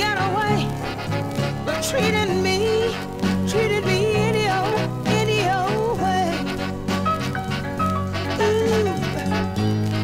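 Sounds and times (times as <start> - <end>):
soul song with band: 0.0 - 10.0.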